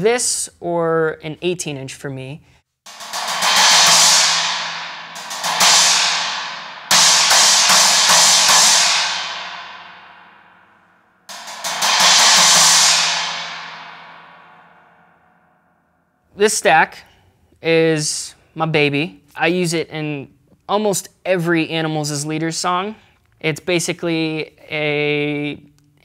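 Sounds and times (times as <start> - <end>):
china cymbal crashes: 2.9 - 10.7, 11.3 - 15.4.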